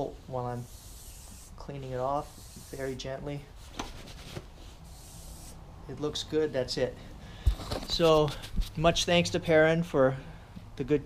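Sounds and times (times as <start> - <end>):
rubbing and rustling from handling: 0.0 - 5.6.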